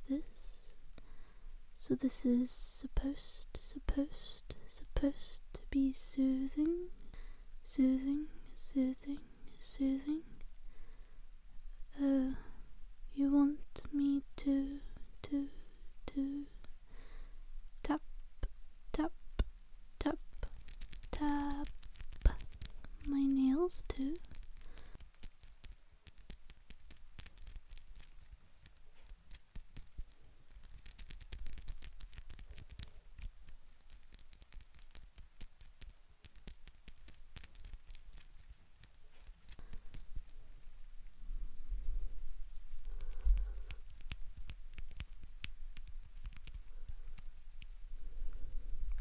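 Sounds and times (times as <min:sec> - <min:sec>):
crisp clicks and scratches: 0:20.2 - 0:40.8, 0:42.6 - 0:47.8.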